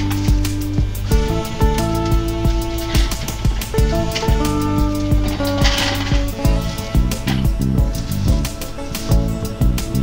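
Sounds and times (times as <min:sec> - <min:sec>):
plucked guitar-like music with beat: 0:00.0 - 0:10.0.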